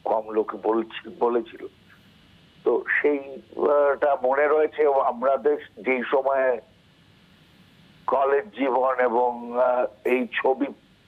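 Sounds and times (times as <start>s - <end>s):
man talking over telephone: 0.0s - 1.7s, 2.6s - 6.6s, 8.1s - 10.8s.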